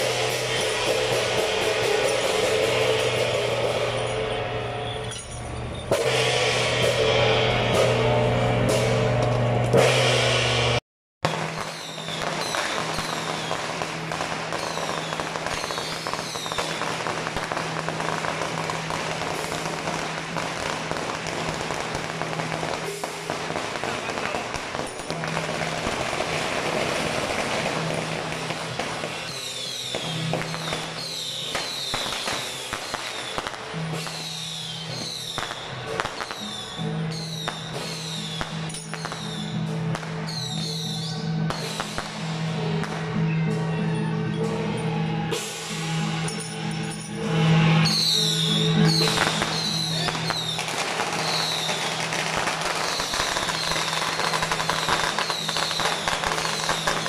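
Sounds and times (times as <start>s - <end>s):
firecrackers crackling: 0.0s - 43.6s, 45.3s - 57.0s
procession music: 31.6s - 57.0s.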